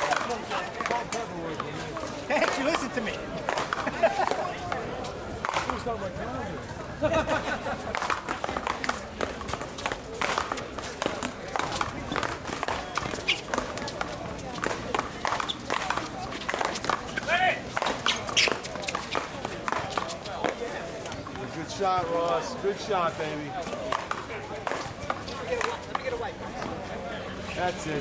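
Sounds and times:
voices talking: 0.0s - 28.0s
footsteps: 6.6s - 26.8s.

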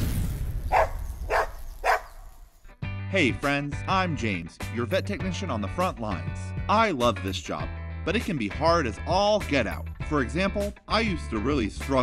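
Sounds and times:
dog barking: 0.7s - 2.2s
background music: 2.7s - 12.0s.

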